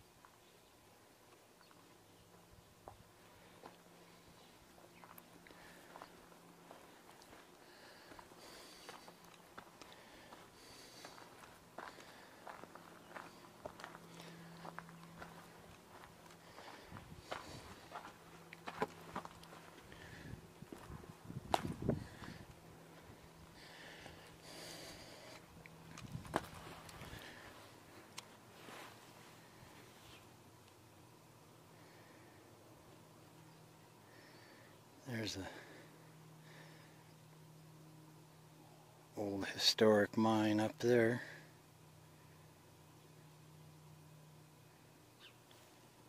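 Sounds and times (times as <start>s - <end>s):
low steady hum: 0.0s - 46.0s
footsteps walking: 4.7s - 24.4s, 25.9s - 29.4s.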